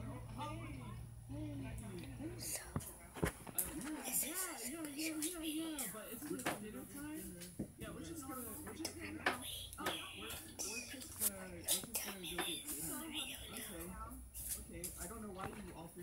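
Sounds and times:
indistinct voices talking: 7.8 - 15.6.

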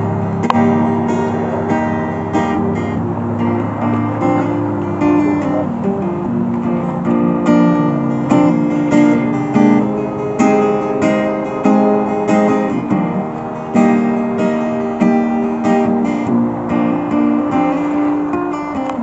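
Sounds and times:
acoustic guitar strummed chords: 0.0 - 19.0.

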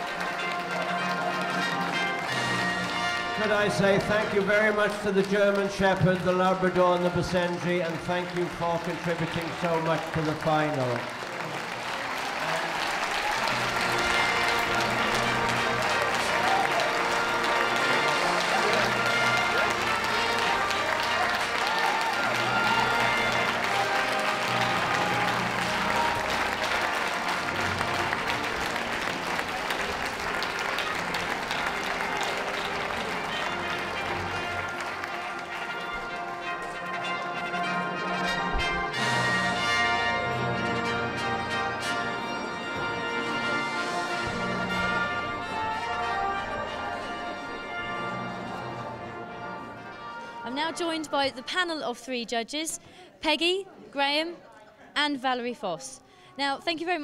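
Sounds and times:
audience applause: 0.0 - 50.3
orchestral music: 0.0 - 51.8.

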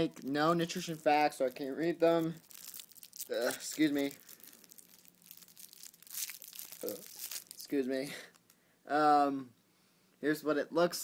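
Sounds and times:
plastic wrapper crinkling: 0.0 - 8.6.

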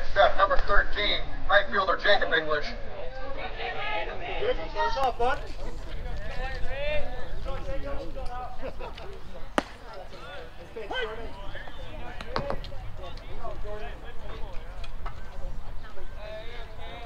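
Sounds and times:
people chattering and calling out: 0.0 - 17.0.

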